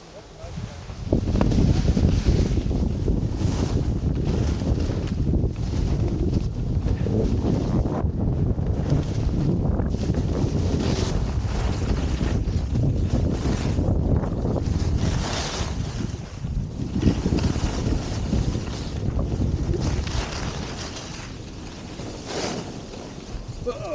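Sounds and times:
wind rushing over microphone: 0:00.0 - 0:23.9
skis carving on snow: 0:00.1 - 0:23.9.

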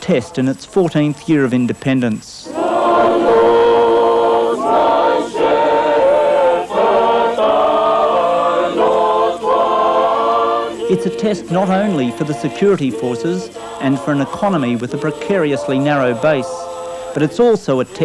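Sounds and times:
group singing held chords: 0:02.4 - 0:18.0.

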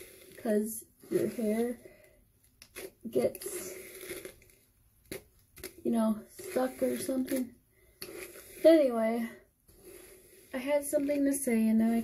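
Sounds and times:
hairbrush strokes through hair: 0:00.0 - 0:01.8, 0:05.9 - 0:12.0
person speaking: 0:00.4 - 0:01.8, 0:03.0 - 0:03.8, 0:05.8 - 0:07.6, 0:08.6 - 0:09.4, 0:10.5 - 0:12.0.

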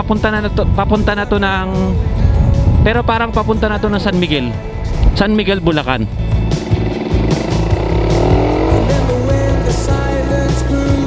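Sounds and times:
background music: 0:00.0 - 0:11.0
motorcycle engine accelerating: 0:06.0 - 0:11.0.

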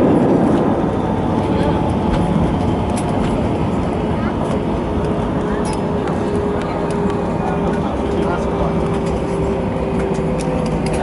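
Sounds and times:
airliner cabin roar: 0:00.0 - 0:11.0
jet engines running steadily: 0:00.0 - 0:11.0.

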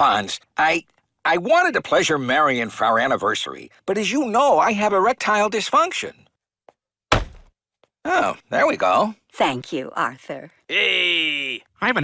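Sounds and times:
cartoon hard thump: 0:07.1 - 0:07.6.

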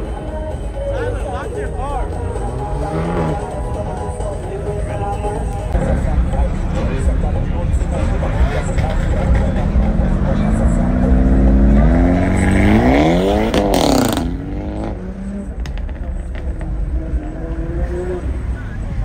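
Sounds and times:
car engine accelerating hard: 0:01.9 - 0:03.8, 0:05.7 - 0:19.0.

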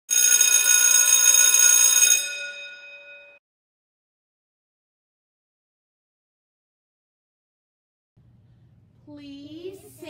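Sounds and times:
electric bell ringing: 0:00.1 - 0:03.4.

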